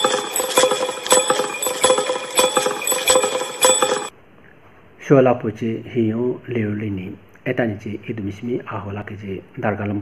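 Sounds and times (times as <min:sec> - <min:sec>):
metallic bells ringing: 0:00.0 - 0:04.1.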